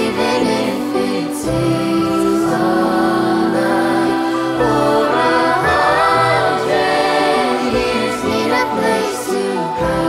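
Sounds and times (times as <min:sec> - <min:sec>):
children's choir singing: 0:00.0 - 0:10.0
string accompaniment: 0:00.0 - 0:10.0
violin: 0:00.0 - 0:10.0.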